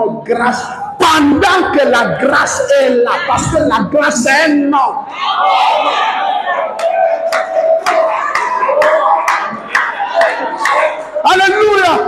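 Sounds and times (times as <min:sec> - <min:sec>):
rhythmic hand clapping: 0:06.7 - 0:11.2.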